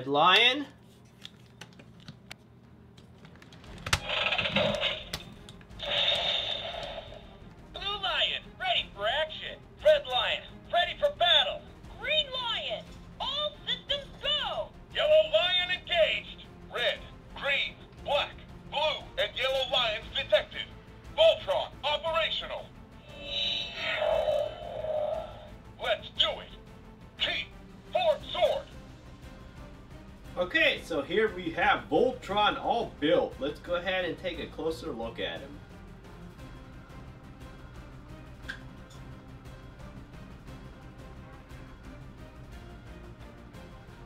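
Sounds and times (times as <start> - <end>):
electronic toy sound effects: 4.0 - 5.2, 5.8 - 7.2, 23.1 - 25.5
electronic effect with tones: 23.1 - 25.5.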